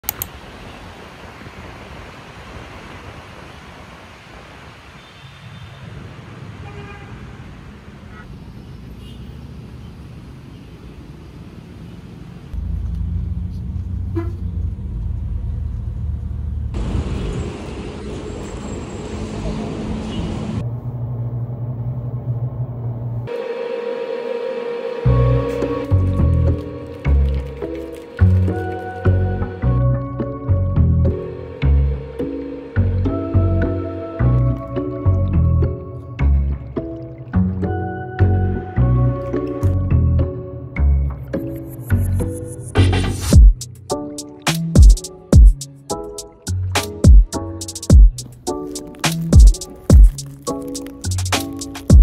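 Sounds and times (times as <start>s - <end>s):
road traffic noise: 0.0s - 52.0s
music with a beat: 42.8s - 52.0s.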